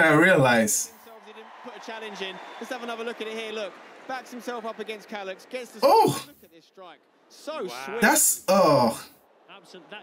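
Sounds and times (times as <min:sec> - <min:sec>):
man commentating: 0:00.0 - 0:06.7, 0:07.5 - 0:09.8
people talking: 0:00.0 - 0:06.7, 0:07.4 - 0:10.0.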